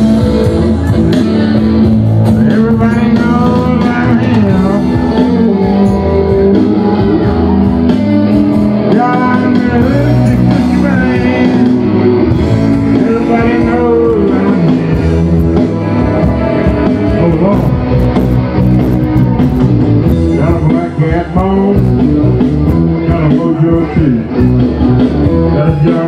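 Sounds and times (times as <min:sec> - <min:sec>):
drums: 0:00.0 - 0:26.0
electric guitar: 0:00.0 - 0:26.0
live rock band playing: 0:00.0 - 0:26.0.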